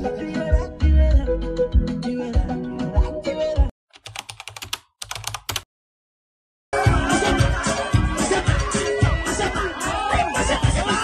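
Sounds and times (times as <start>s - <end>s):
music: 0.0s - 3.7s, 6.8s - 11.0s
computer keyboard typing clicks: 4.0s - 5.7s.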